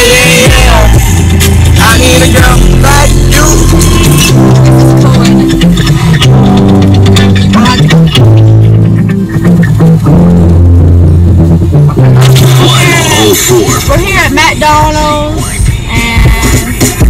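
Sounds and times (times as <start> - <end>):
music on car stereo: 0.0 - 17.0.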